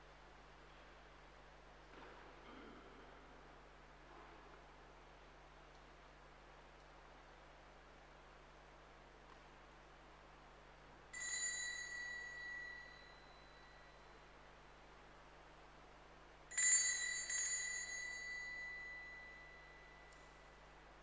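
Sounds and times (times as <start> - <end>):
handheld altar bell ringing: 11.1 - 14.2, 16.5 - 20.7.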